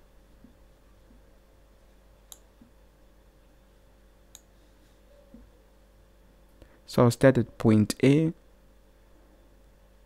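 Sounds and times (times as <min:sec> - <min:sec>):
faint room hum: 0:00.0 - 0:10.0
computer mouse clicks: 0:02.3 - 0:02.5, 0:04.3 - 0:04.5.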